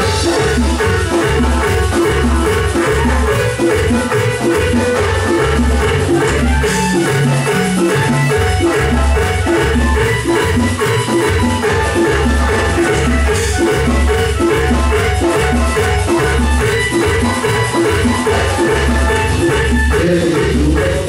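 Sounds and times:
hand percussion: 0.0 - 21.0
keyboard: 0.0 - 21.0
latin dance band playing: 0.0 - 21.0
repeating bass line: 0.0 - 21.0.

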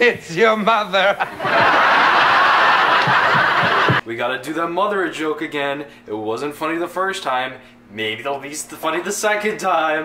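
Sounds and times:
studio audience laughing: 1.0 - 4.0.

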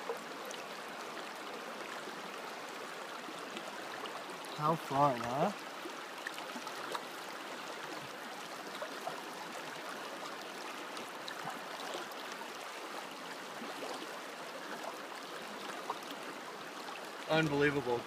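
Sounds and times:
river flowing over stones: 0.0 - 18.0.

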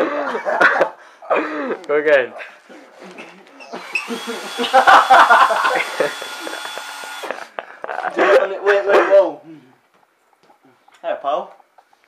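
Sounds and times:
cordless drill motor whining: 3.7 - 7.5.

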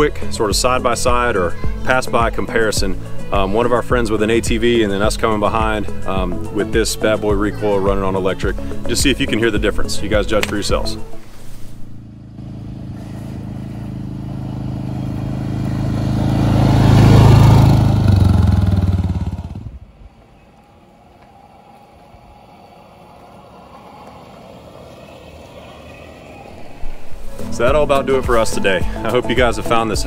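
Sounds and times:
faint electric vehicle approaching: 0.0 - 28.8
atv engine driving past: 10.7 - 29.1.

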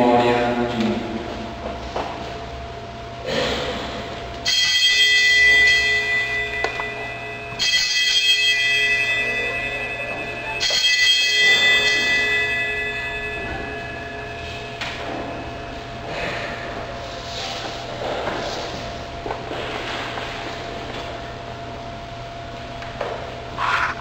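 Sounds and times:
altar bells ringing: 4.4 - 16.8.

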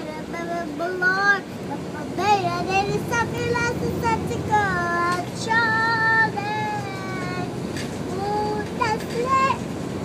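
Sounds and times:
toddler girl singing: 0.0 - 9.7.

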